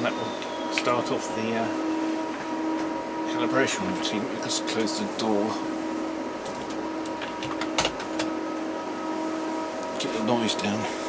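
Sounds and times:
equipment hum: 0.0 - 11.0.

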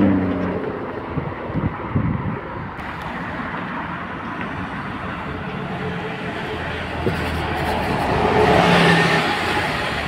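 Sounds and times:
bus driving past: 2.6 - 10.0.

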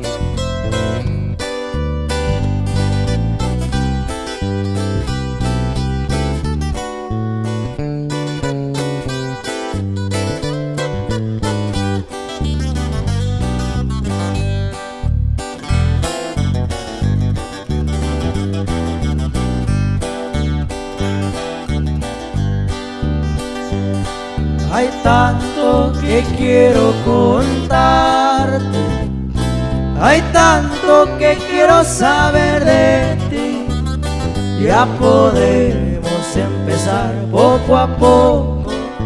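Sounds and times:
acoustic guitars playing: 0.0 - 39.0
bass line: 0.0 - 39.0.

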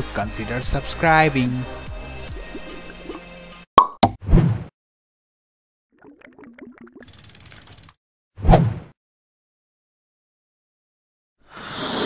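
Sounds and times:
fast ratchet-like clicking: 7.0 - 8.0.

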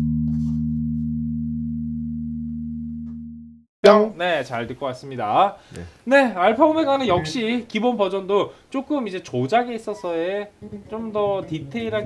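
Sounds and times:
electric bass low note: 0.0 - 3.6.

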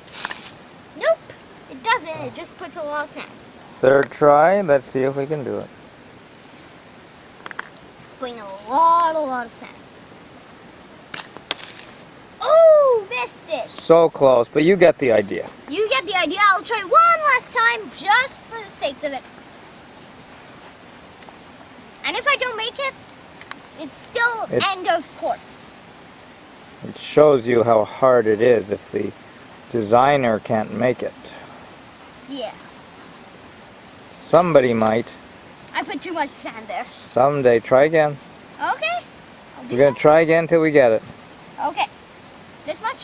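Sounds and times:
steady background hiss: 0.0 - 43.0
boy's voice: 1.0 - 3.4, 8.2 - 9.8, 12.4 - 13.9, 15.7 - 19.3, 22.0 - 23.0, 23.8 - 25.7, 32.2 - 32.6, 35.7 - 37.2, 38.6 - 40.1, 41.6 - 42.0, 42.7 - 43.0.

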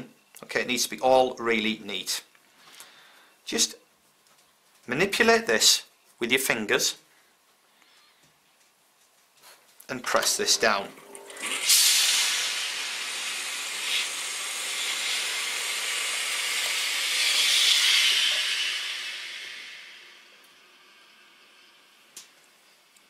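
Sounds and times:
steam iron hissing: 10.5 - 22.8.

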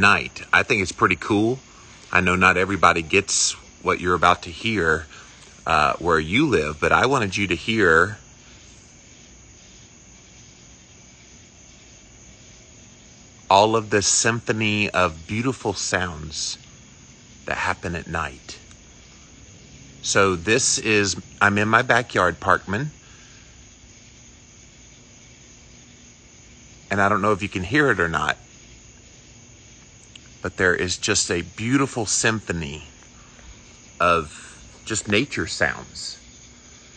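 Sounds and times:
insects chirping at night: 0.0 - 36.9.

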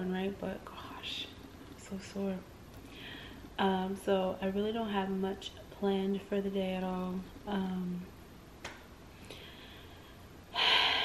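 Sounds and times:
woman's sharp intake of breath: 10.6 - 11.0.

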